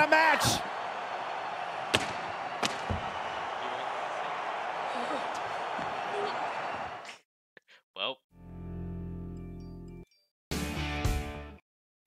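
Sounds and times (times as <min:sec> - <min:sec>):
crowd noise: 0:00.0 - 0:07.2.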